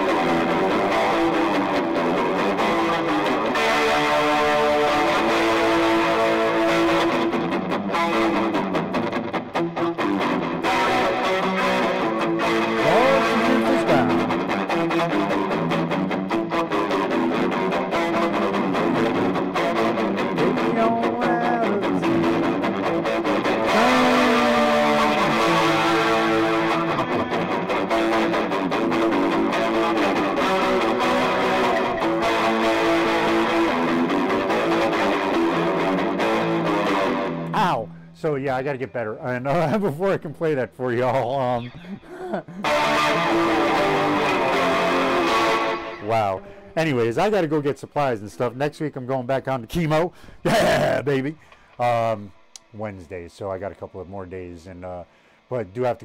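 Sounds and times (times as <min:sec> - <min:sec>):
electric guitar strummed chords: 0:00.0 - 0:49.4.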